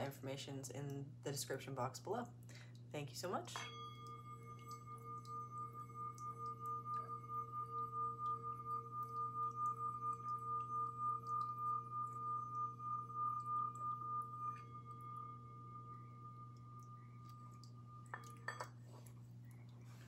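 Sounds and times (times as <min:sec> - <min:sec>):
singing bowl ringing: 0:03.5 - 0:19.7.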